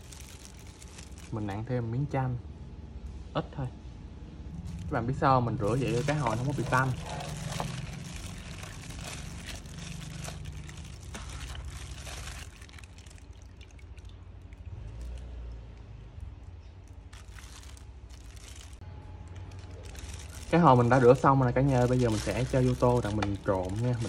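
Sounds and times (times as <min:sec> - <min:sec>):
plastic glove crinkling: 0:00.0 - 0:01.7, 0:04.5 - 0:15.2, 0:16.7 - 0:24.0
water sloshing and splashing: 0:04.5 - 0:18.8, 0:19.5 - 0:24.0.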